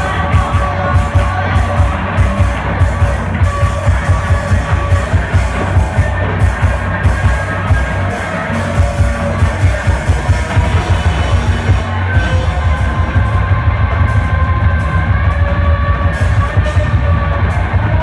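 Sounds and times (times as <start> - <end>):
noise-rock band playing loud: 0.0 - 18.0.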